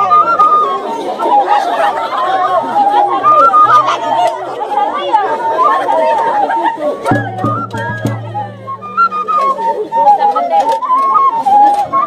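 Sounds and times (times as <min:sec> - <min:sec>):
flute melody: 0:00.0 - 0:12.0
people chattering and singing: 0:00.0 - 0:12.0.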